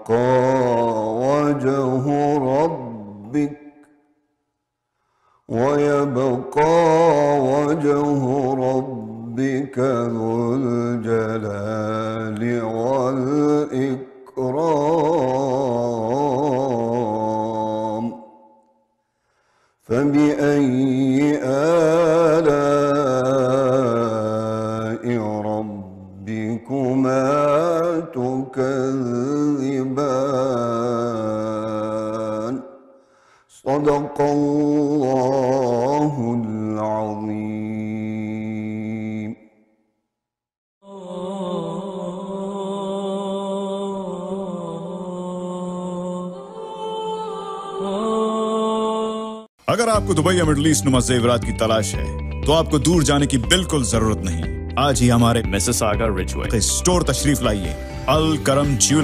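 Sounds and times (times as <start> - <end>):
man chanting melodically: 0.0 - 3.6, 5.5 - 18.2, 19.9 - 32.6, 33.6 - 39.4, 49.7 - 59.0.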